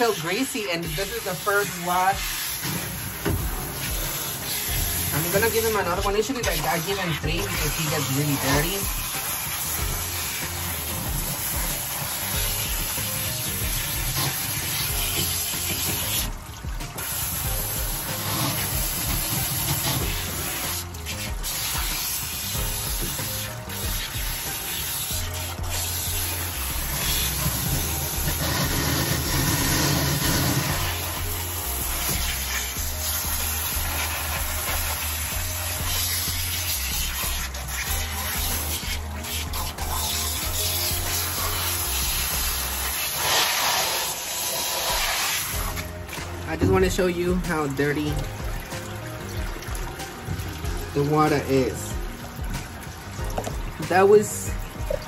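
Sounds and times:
background music: 0.0 - 55.0
water spraying from hose: 0.0 - 55.0.

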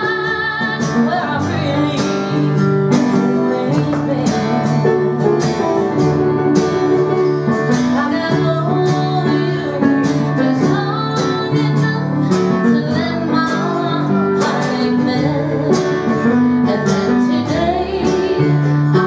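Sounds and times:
acoustic guitar strumming: 0.0 - 19.0
electric keyboard chords: 0.0 - 19.0.

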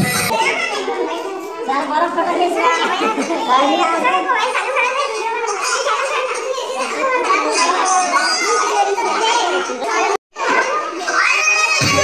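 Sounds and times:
song with heavy bass: 0.0 - 0.3
children chattering: 0.0 - 12.0.

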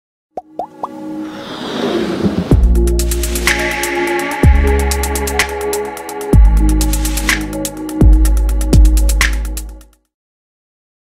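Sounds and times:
rising riser with held chord: 0.7 - 7.5.

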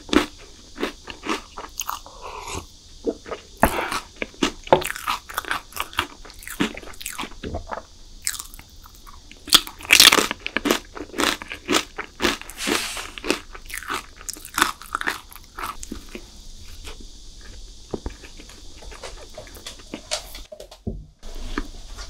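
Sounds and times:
chewing crunchy snack: 0.0 - 20.3.

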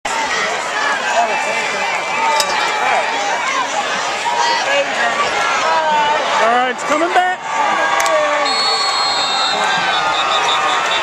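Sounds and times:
spectators shouting: 0.1 - 11.0.

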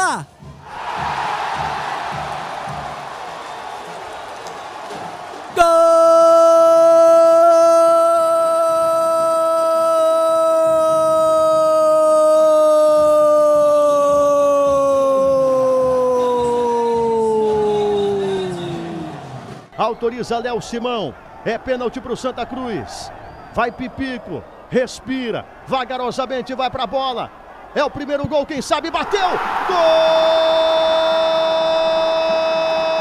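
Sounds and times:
stadium crowd cheering: 0.0 - 33.0
commentator's long held shout: 5.6 - 19.2, 28.8 - 33.0.

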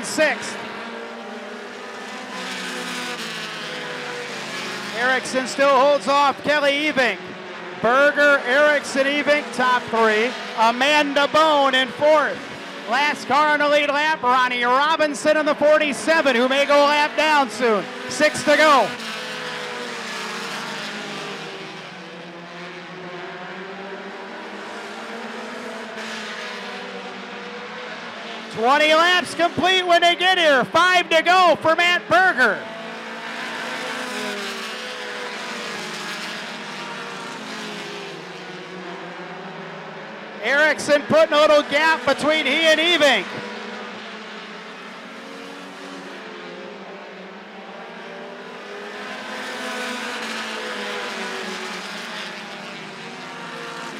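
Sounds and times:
stock car engines racing: 0.0 - 53.9.

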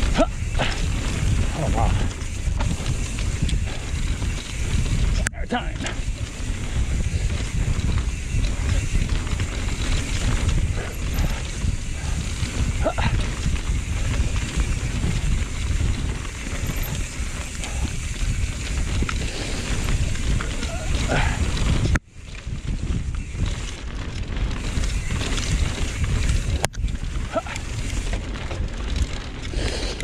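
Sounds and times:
tyres rolling on dirt trail: 0.0 - 30.0
wind buffeting microphone: 0.0 - 30.0.

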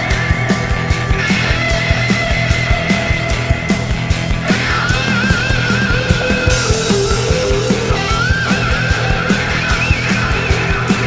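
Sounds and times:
distorted guitars: 0.0 - 11.0
drum beat: 0.0 - 11.0
high lead guitar bending: 0.0 - 11.0.

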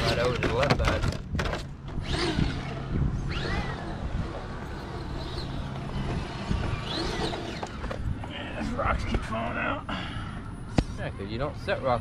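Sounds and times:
electric motor whining: 1.8 - 9.2.

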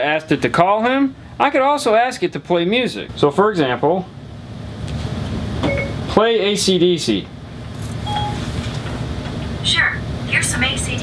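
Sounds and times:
low steady hum: 0.0 - 11.0
short electronic chime: 8.0 - 8.4.

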